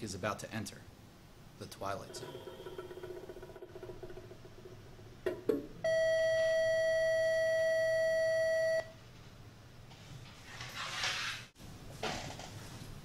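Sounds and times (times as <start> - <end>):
faint ringing tone: 5.8 - 8.9.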